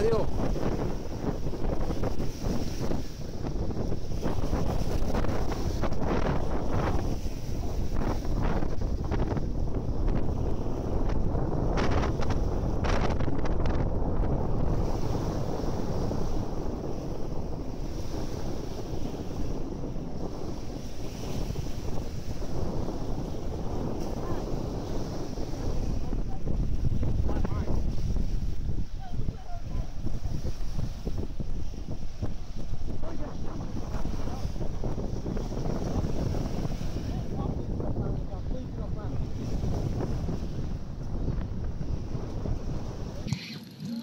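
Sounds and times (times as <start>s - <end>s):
small waves breaking on sand: 0.0s - 44.0s
wind buffeting microphone: 0.0s - 44.0s.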